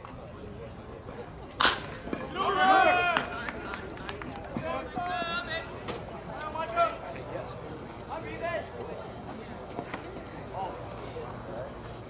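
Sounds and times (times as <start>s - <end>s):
people shouting: 2.3s - 3.4s.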